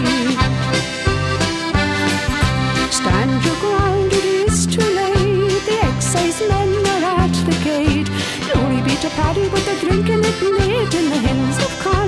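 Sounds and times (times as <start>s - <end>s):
person singing ballad: 0.0s - 0.6s, 2.9s - 12.0s
piano accordion playing: 0.0s - 12.0s.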